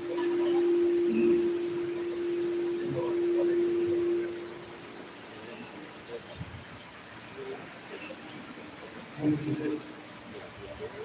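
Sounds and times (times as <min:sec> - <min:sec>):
microphone feedback tone: 0:00.0 - 0:05.8.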